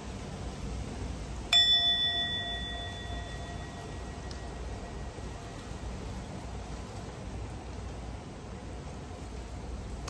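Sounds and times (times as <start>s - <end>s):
singing bowl struck and ringing: 1.5s - 5.9s.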